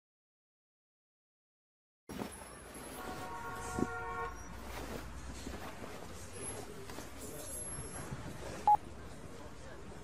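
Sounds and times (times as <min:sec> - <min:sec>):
horn-like tone: 0:02.9 - 0:04.7.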